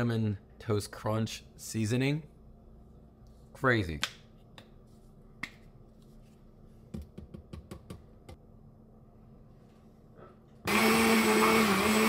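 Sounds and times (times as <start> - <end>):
shaker tapping and clicking: 6.9 - 8.0.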